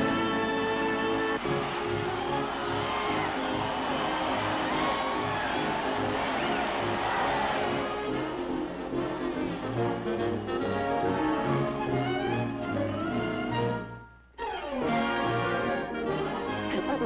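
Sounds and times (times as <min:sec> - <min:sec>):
brass-led orchestral cartoon music: 0:00.0 - 0:17.0.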